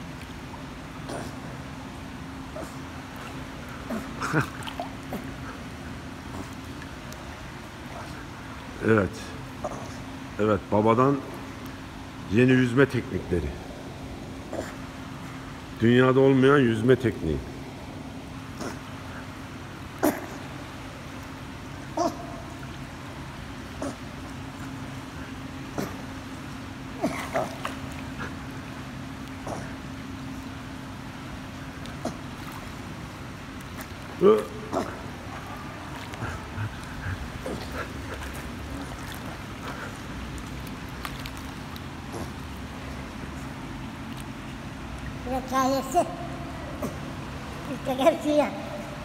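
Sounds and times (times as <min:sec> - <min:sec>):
steady low hum: 0:00.0 - 0:49.0
water splashes: 0:00.0 - 0:49.0.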